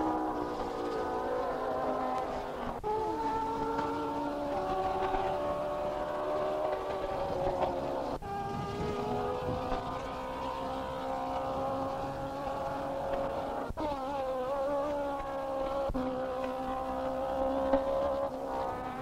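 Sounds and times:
racing car engines at speed: 0:00.0 - 0:19.0.

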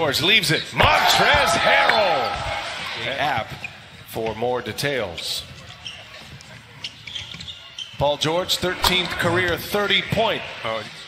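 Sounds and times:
shoe squeaks on floor: 0:03.5 - 0:09.0.

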